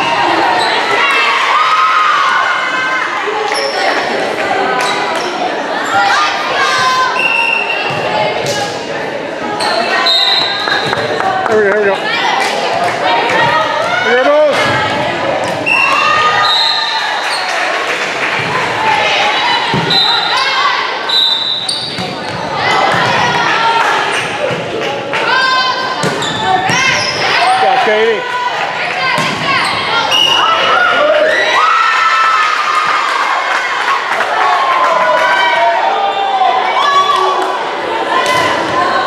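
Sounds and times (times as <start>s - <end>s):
sneakers squeaking: 0.0s - 1.2s, 6.8s - 8.8s, 9.4s - 11.7s, 14.6s - 17.8s, 19.3s - 23.4s, 25.8s - 27.8s, 28.9s - 31.4s.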